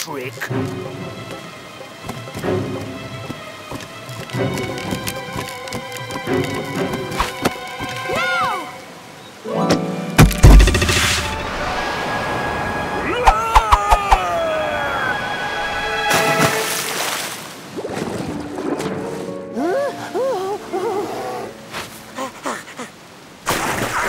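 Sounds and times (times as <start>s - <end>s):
loud rush of water: 0.0s - 19.3s, 20.6s - 24.0s
sharp wooden cracks: 10.2s - 11.3s
dramatic cartoon score: 10.4s - 16.8s.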